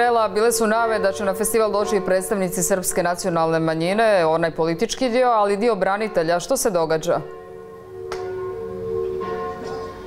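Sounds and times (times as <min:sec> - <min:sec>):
soft chime-like background music: 0:07.3 - 0:10.0.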